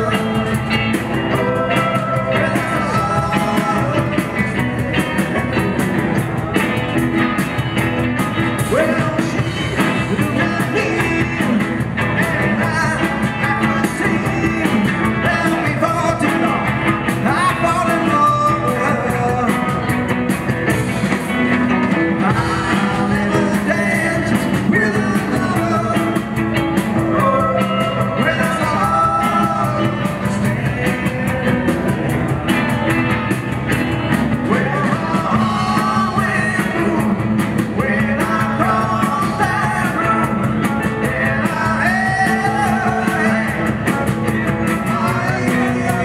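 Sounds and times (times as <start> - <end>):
live rock band playing: 0.0 - 46.0.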